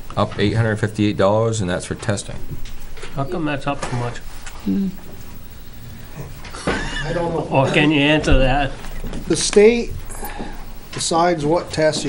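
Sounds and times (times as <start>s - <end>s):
person speaking: 0.0s - 6.4s.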